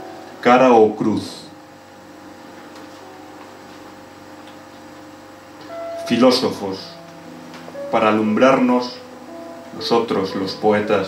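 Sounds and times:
quiet guitar music: 0:02.5 - 0:05.0, 0:05.6 - 0:11.0.

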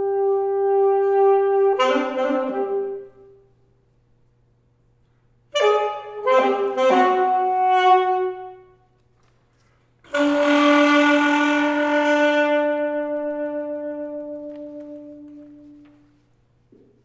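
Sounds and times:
alto saxophone playing: 0:00.0 - 0:03.5, 0:05.5 - 0:08.9, 0:10.0 - 0:16.2.

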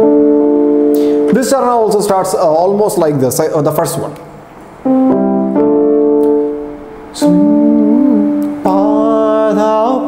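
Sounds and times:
keyboard playing chords: 0:00.0 - 0:02.2, 0:04.6 - 0:10.0.

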